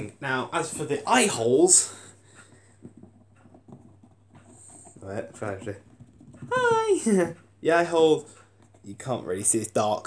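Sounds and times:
soft taps and rubs of handling: 0:02.3 - 0:06.8.

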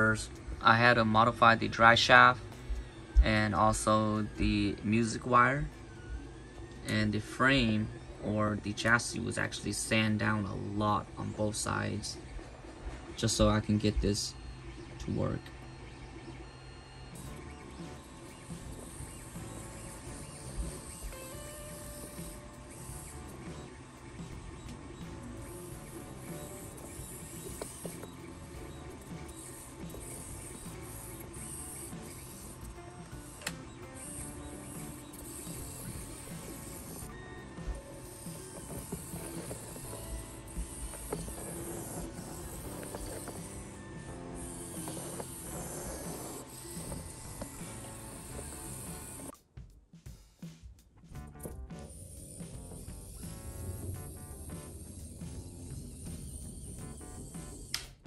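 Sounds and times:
background music: 0:00.0 - 0:13.5, 0:16.4 - 0:58.0
toy car motor whirring: 0:16.4 - 0:49.4, 0:51.4 - 0:58.0.

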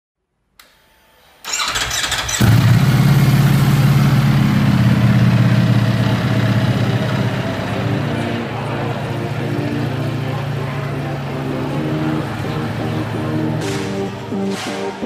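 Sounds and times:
motorcycle starter cranking: 0:01.5 - 0:04.4
motorcycle engine idling: 0:01.7 - 0:13.6.

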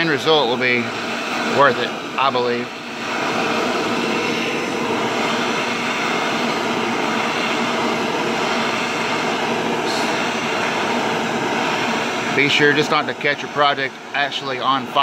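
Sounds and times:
gas torch flame hissing: 0:00.0 - 0:15.0.

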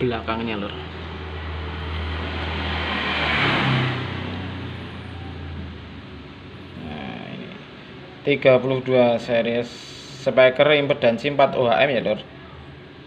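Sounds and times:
motor vehicle passing by: 0:00.0 - 0:08.0.

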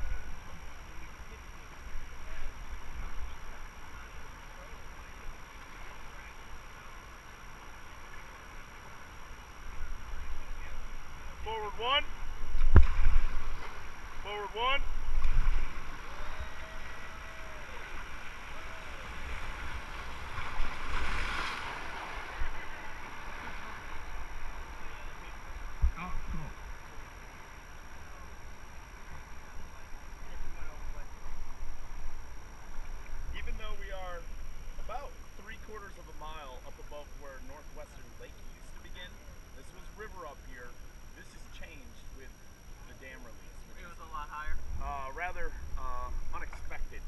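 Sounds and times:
voices: 0:00.0 - 0:12.3, 0:13.0 - 0:20.6, 0:21.6 - 0:47.0
rushing river water: 0:00.0 - 0:34.9
wind rumbling on microphone: 0:12.1 - 0:14.2, 0:25.5 - 0:26.7, 0:44.5 - 0:47.0.

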